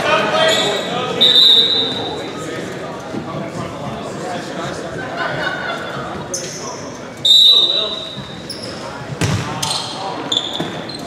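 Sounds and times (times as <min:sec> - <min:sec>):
voices in gym: 0:00.0 - 0:11.0
referee's whistle blast: 0:00.5 - 0:02.2, 0:07.2 - 0:08.3
faint high squeak: 0:09.6 - 0:11.0.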